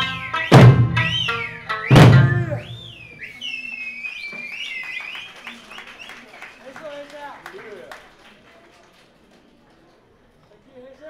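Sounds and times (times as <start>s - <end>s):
heavy barrel drum strike: 0.0s - 1.3s, 1.9s - 2.8s
drumming: 0.0s - 3.2s
high finger whistles: 0.1s - 6.8s.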